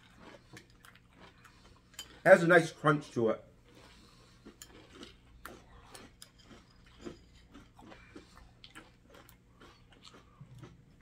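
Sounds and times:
chewing and crunching cereal: 0.0 - 11.0.

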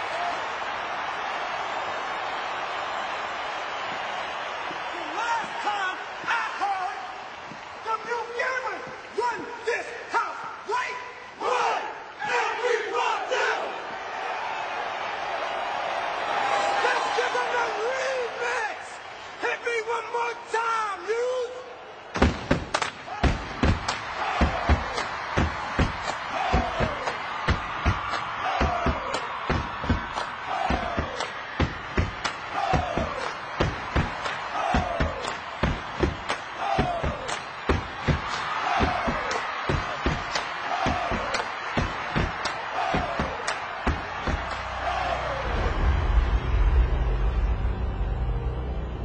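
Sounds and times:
crowd noise: 0.0 - 49.0
group shouting in unison: 11.4 - 14.8, 24.0 - 45.9
hard stomps: 22.2 - 44.8.

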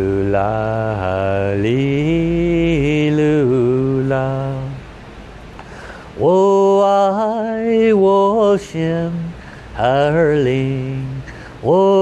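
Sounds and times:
man chanting: 0.0 - 4.8, 6.2 - 12.0.

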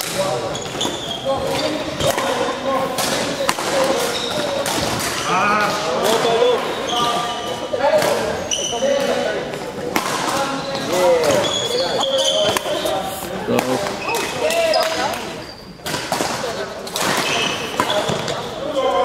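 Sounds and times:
shoes squeaking on court floor: 0.0 - 2.5, 3.7 - 19.0
rackets hitting shuttlecock: 0.0 - 6.3, 7.9 - 18.5.

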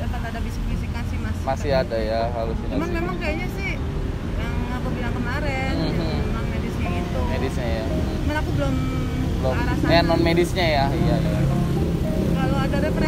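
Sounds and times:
indistinct voices in conversation: 0.0 - 13.0
motor vehicles rumbling: 0.0 - 13.0.

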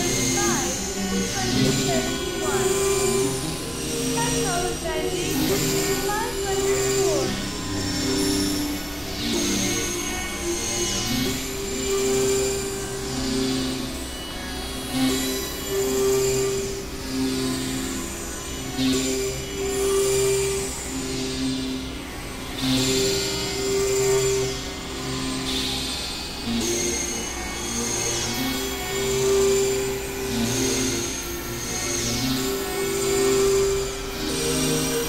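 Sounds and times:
electronic drone music: 0.0 - 35.0.

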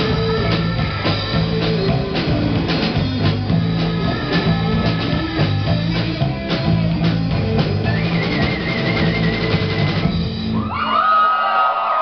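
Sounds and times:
live rock band playing: 0.0 - 11.1
whistles from audience: 7.9 - 10.0
audience cheering: 7.9 - 12.0.

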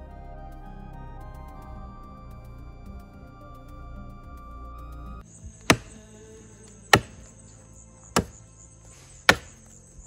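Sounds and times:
axe chopping into tree trunk: 5.5 - 6.0, 6.9 - 7.4, 8.2 - 8.4, 9.1 - 9.7.

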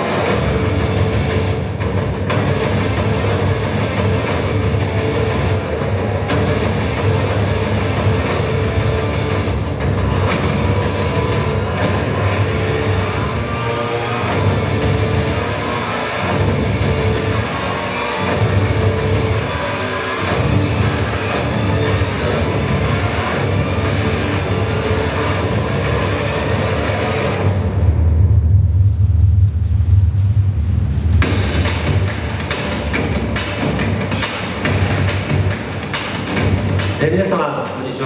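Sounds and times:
loud music with heavy bass: 0.0 - 38.0.

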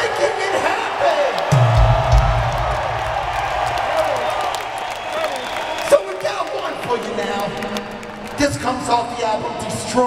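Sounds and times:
crowd cheering and clapping: 0.0 - 9.2
rock band holding low note: 1.5 - 4.4.

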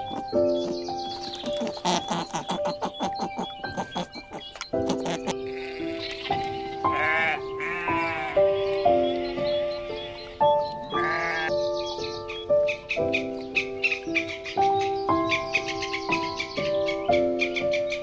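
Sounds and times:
instrumental music: 0.0 - 18.0
sheep bleating: 5.0 - 6.0, 6.8 - 9.3, 11.0 - 11.5.

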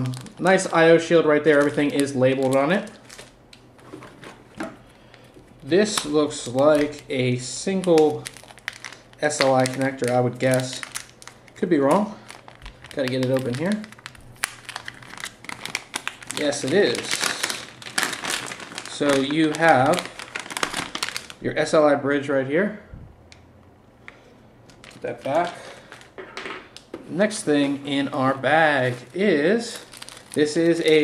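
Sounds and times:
plastic bag crinkling: 0.0 - 21.8, 24.1 - 31.0.

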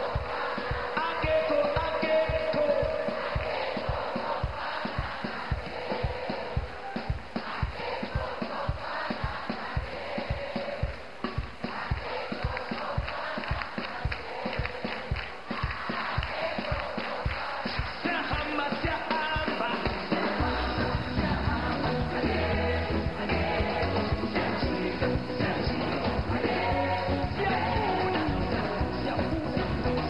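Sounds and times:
congregation singing: 0.0 - 30.0
gospel worship music: 0.0 - 30.0
steady drum beat: 0.0 - 30.0
people clapping: 0.1 - 1.2, 3.1 - 6.4, 11.6 - 20.2.

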